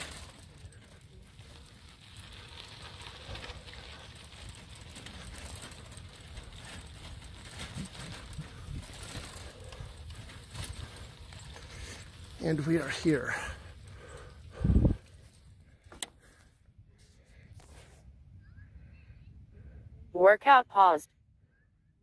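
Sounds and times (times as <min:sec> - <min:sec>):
faint footsteps on dry grass: 0:00.0 - 0:18.0.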